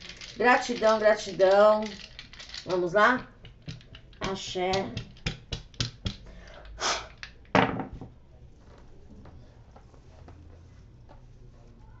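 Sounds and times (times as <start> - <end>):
dice clattering on cloth table: 0.0 - 6.3
dice ticking as they settle: 0.1 - 6.3.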